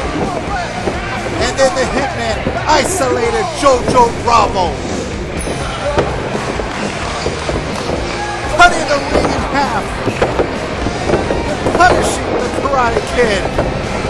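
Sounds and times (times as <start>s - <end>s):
background music: 0.0s - 14.0s
crowd voices: 0.0s - 14.0s.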